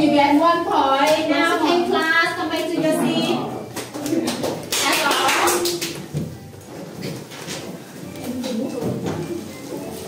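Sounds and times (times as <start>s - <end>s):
students chatting: 1.4s - 4.7s.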